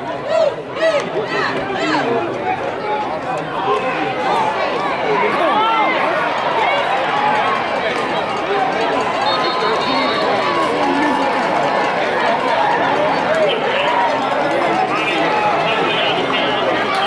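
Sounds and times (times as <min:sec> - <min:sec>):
crowd shouting and talking: 0:00.0 - 0:17.0.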